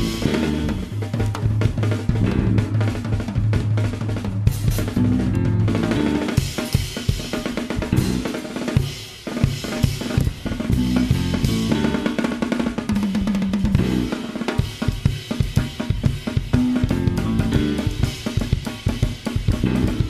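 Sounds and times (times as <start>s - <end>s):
jazz drum kit playing: 0.0s - 20.0s.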